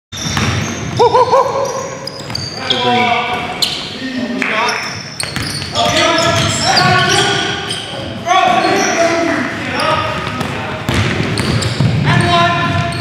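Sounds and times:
sneakers squeaking: 0.1s - 13.0s
ball bouncing on hardwood court: 0.2s - 2.5s, 5.2s - 7.5s, 10.0s - 13.0s.

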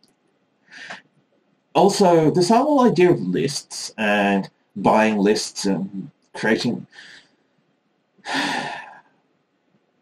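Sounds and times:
man breathing: 0.7s - 1.0s, 6.9s - 7.4s, 8.3s - 9.1s.

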